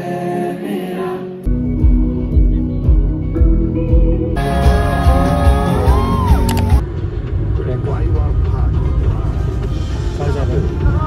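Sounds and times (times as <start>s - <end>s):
live concert with heavy bass: 1.5s - 6.8s
crowd voices: 4.4s - 6.9s.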